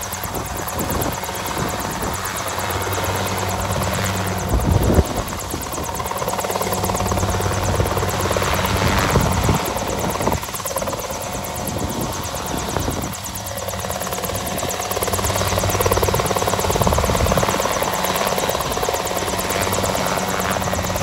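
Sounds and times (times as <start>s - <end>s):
helicopter rotor beating: 0.0s - 21.0s.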